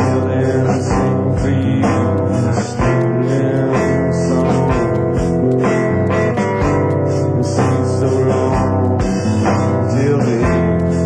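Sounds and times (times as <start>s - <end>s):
strummed guitar chords: 0.0s - 11.0s
sustained tones: 0.0s - 11.0s.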